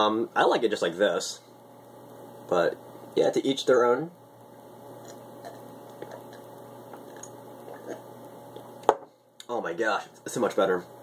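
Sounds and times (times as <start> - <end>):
person swallowing: 5.0 - 8.1.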